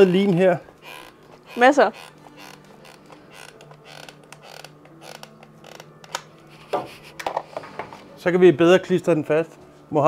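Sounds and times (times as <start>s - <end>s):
glue gun creaking and clicking: 0.1s - 6.3s.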